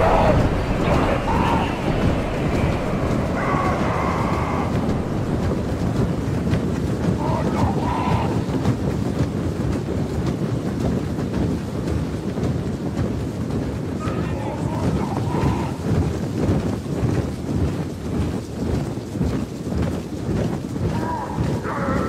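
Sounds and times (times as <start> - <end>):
gruff shouts: 0.0 - 5.9, 7.2 - 8.5, 14.0 - 15.8, 20.9 - 22.0
heavy marching footfalls: 0.0 - 22.0.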